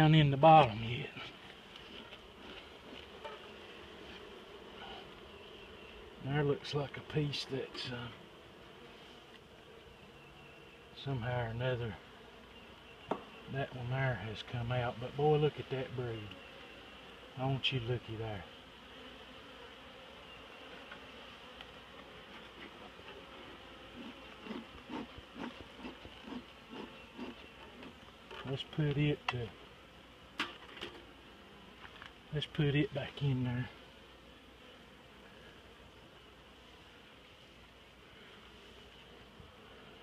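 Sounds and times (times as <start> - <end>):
honeybees buzzing: 0.0 - 40.0.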